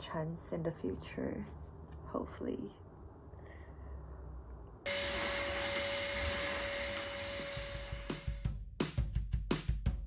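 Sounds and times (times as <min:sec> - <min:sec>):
vacuum cleaner on carpet: 0:04.9 - 0:08.4.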